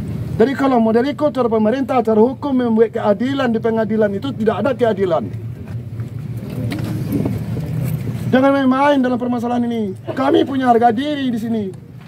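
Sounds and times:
vehicle engine rumbling: 0.0 - 12.0.

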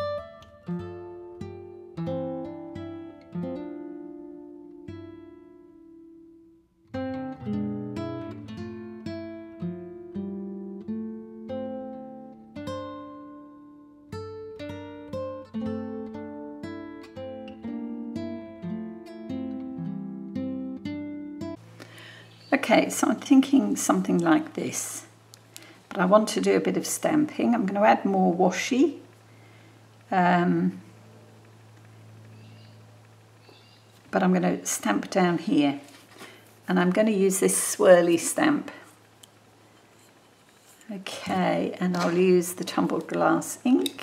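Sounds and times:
acoustic guitar plucking: 0.0 - 5.9, 6.8 - 22.0.

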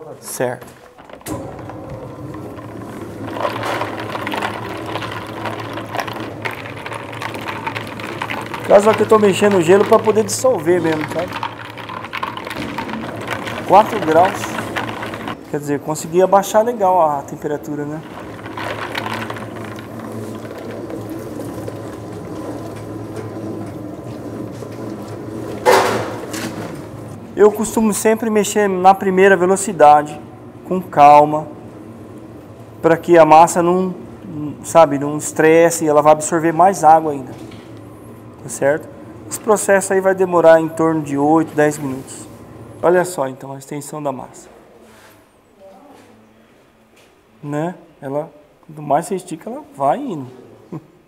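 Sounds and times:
dough mixer motor hum: 1.3 - 15.4, 17.1 - 27.2.

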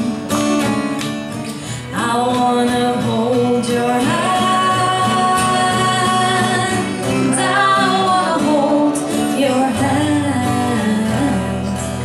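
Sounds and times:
acoustic guitar: 0.0 - 12.0
woman singing a ballad: 1.6 - 12.0.

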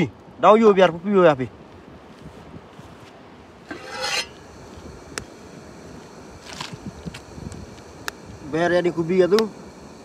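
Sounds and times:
faint steady hiss: 0.0 - 10.0
short scraping rasp: 3.7 - 4.4.

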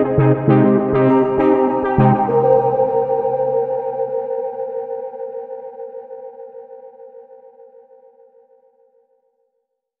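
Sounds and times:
held synthesizer chord: 0.0 - 7.6.

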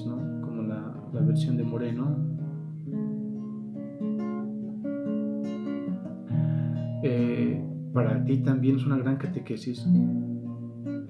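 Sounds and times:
classical guitar picked chords: 0.0 - 11.0.

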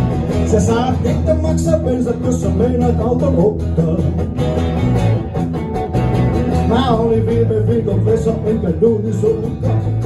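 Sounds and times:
acoustic guitars playing blues: 0.0 - 10.0
low bass line: 0.0 - 10.0.

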